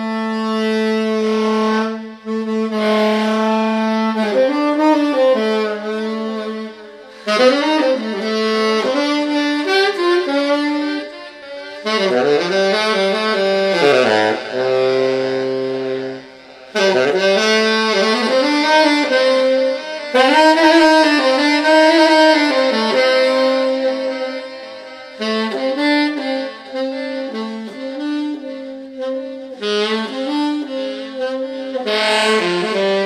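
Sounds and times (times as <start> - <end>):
tenor saxophone long note: 0.0 - 33.0.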